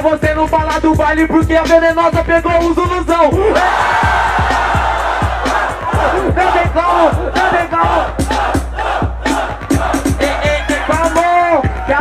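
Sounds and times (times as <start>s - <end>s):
trap-funk beat: 0.0s - 12.0s
crowd shouting and cheering: 3.3s - 12.0s.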